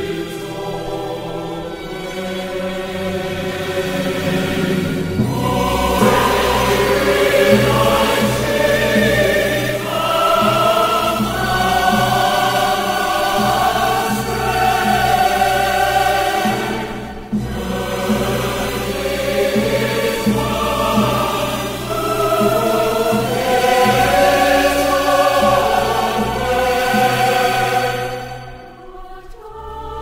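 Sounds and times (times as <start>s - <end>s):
choir singing held chords: 0.0s - 30.0s
instrumental accompaniment: 0.0s - 30.0s.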